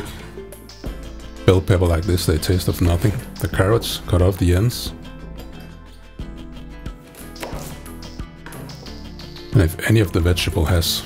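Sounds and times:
background music: 0.0 - 11.0
knife striking cutting board: 7.2 - 7.9.

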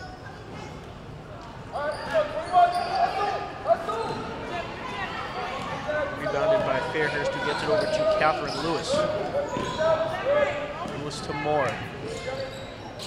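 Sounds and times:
basketball bouncing on court: 8.9 - 9.8.

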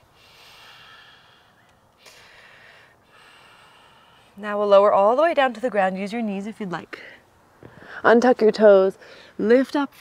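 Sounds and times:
person breathing out slowly: 0.1 - 4.4.

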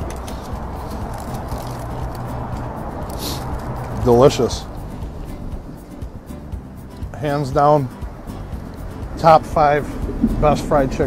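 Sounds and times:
short hiss: 3.1 - 3.6.

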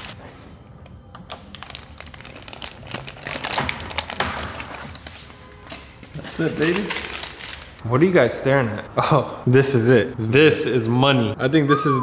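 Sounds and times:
plastic wrapping crinkling: 1.2 - 7.8.

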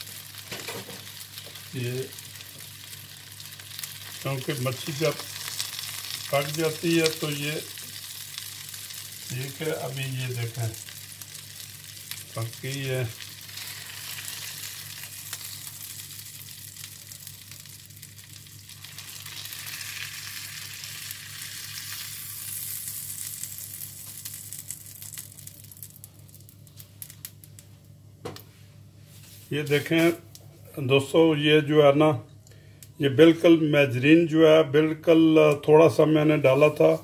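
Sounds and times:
fish fillets sizzling in oil: 0.0 - 27.5.

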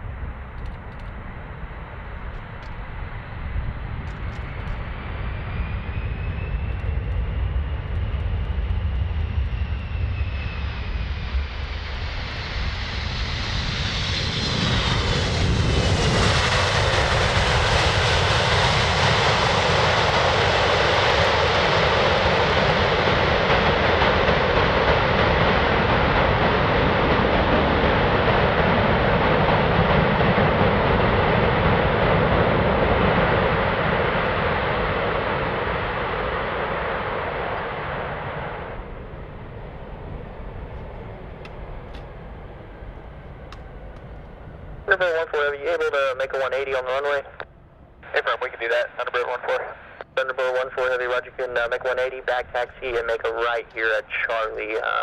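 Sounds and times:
jet turbine whine: 0.0 - 55.0
reverse thrust jet roar: 0.0 - 55.0.

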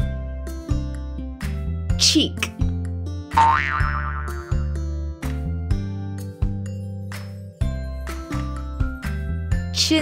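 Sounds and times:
children's background music: 0.0 - 10.0
cartoon boing sound effect: 3.4 - 4.6.

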